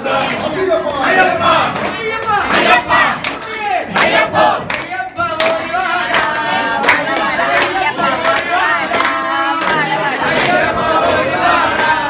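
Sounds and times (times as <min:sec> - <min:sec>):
men singing a devotional chant: 0:00.0 - 0:12.0
hands clapping in time: 0:00.2 - 0:12.0.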